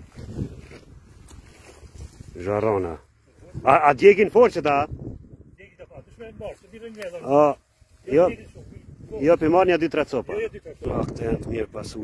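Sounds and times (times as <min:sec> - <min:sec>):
wind on microphone: 0:00.0 - 0:02.5, 0:03.4 - 0:06.5, 0:07.8 - 0:12.0.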